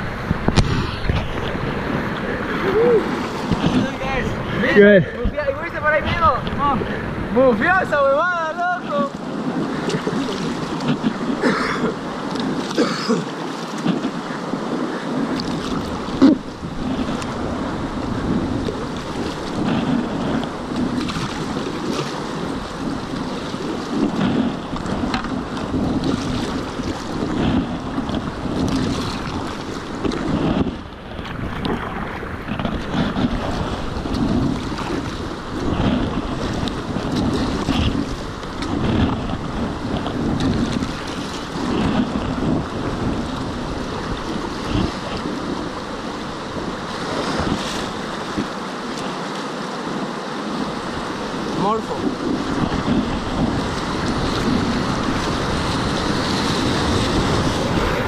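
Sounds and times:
paddle strokes: 0.0s - 58.0s
river water rushing and splashing: 0.0s - 58.0s
wind noise on microphone: 0.0s - 58.0s.

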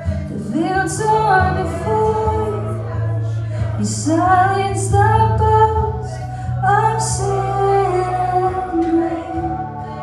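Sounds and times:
live band with guitars: 0.0s - 10.0s
woman singing: 0.0s - 10.0s.

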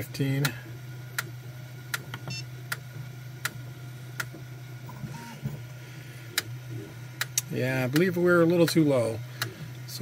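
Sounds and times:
printer humming: 0.0s - 10.0s
extruder clicking: 6.3s - 8.8s.

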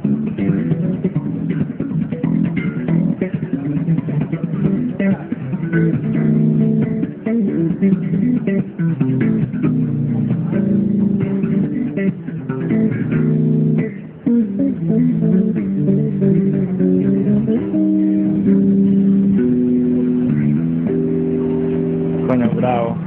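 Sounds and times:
electric bass guitar: 0.0s - 23.0s.

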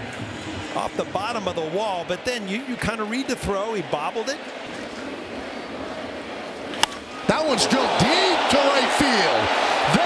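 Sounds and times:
baseball bat cracking ball: 6.7s - 7.1s.

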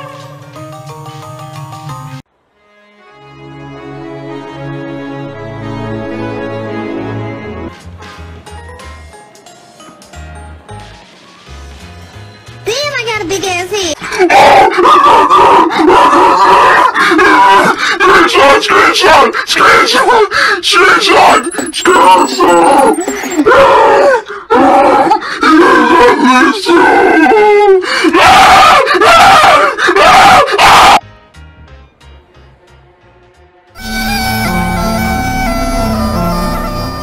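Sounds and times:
harsh distorted yell: 14.1s - 31.0s
distorted screaming: 20.6s - 25.1s, 33.8s - 37.0s.

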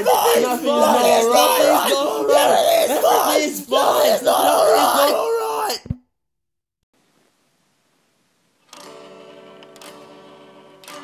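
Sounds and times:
many voices singing and chanting: 0.0s - 5.4s.

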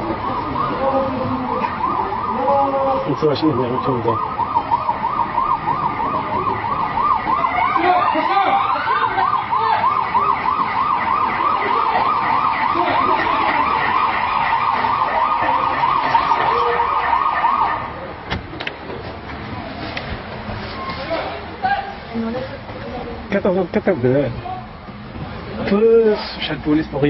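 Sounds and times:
second rising siren tone: 0.0s - 18.0s
siren warbling: 0.0s - 18.0s.

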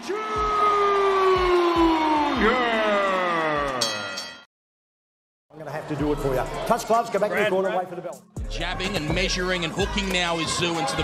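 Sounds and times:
thumping beat: 8.4s - 10.7s.

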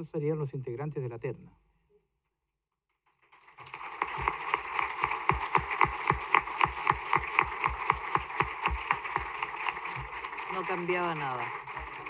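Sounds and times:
audience applauding: 3.3s - 12.0s.

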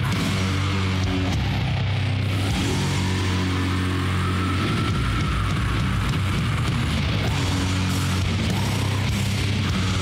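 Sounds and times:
distorted doom metal guitar chords: 0.0s - 10.0s.

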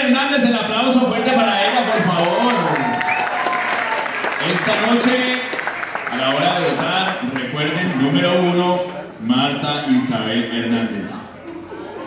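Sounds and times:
audience applauding: 1.6s - 7.6s.

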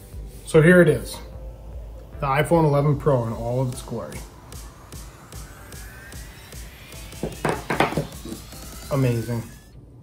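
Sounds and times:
background music: 0.0s - 9.8s.

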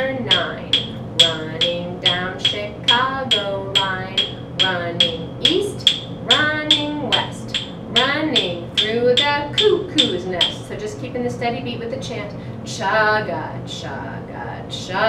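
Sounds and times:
wooden rhythm sticks tapping: 0.0s - 10.8s
woman chanting a rhyme: 0.0s - 15.0s.

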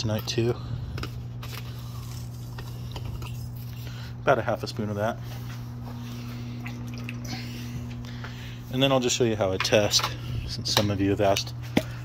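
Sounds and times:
pump unit humming: 0.0s - 12.0s.

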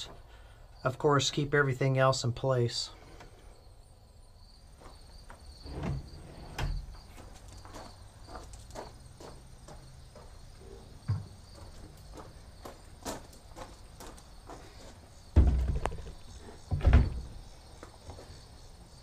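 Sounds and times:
crickets chirping: 0.0s - 19.0s
handling knocks and thumps: 11.0s - 11.8s, 15.3s - 17.4s.

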